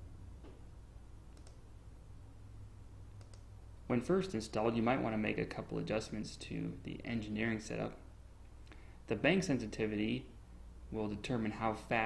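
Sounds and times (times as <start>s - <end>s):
low steady hum: 0.0s - 12.0s
computer mouse clicks: 1.3s - 1.6s, 3.2s - 3.5s
man speaking: 3.9s - 8.1s, 9.1s - 12.0s.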